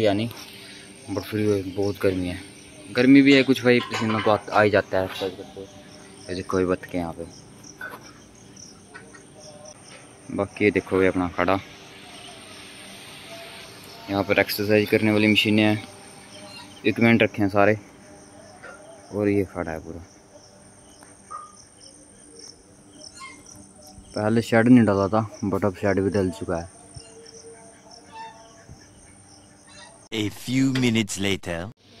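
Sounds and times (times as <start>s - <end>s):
insects chirping: 0.0s - 30.8s
thin high whine: 11.1s - 18.8s.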